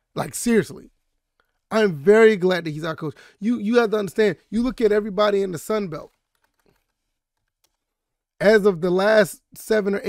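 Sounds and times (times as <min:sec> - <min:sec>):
typing on computer keyboard: 0:06.1 - 0:08.0.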